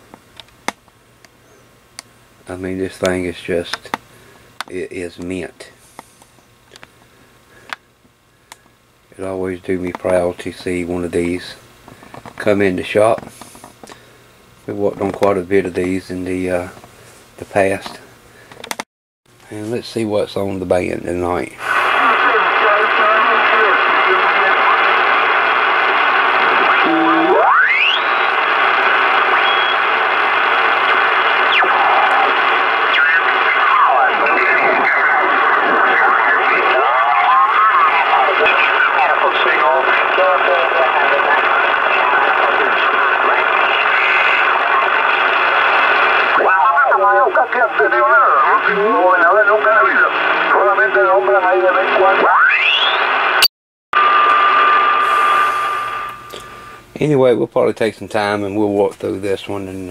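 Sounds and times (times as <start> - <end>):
radio band hiss: 9.1 - 18.6, 19.5 - 53.4, 54.0 - 57.4
garbled warbling radio voices: 26.6 - 28.1, 31.2 - 45.2, 46.2 - 53.1
steady whistle tone: 26.8 - 28.3, 29.4 - 29.8, 52.4 - 53.1
radio whistles sweeping in pitch: 26.8 - 28.4, 29.3 - 29.9, 52.2 - 53.5.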